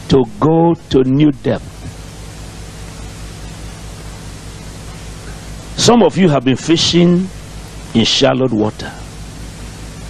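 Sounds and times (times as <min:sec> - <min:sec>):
background hiss: 0:00.0 - 0:10.0
faint low hum: 0:00.0 - 0:10.0
man speaking: 0:00.1 - 0:01.9, 0:05.8 - 0:07.4, 0:08.0 - 0:09.1.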